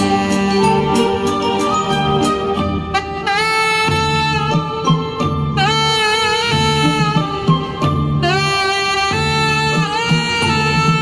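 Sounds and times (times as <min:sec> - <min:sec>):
backing accompaniment: 0:00.0 - 0:11.0
saxophone slow melody: 0:00.0 - 0:11.0.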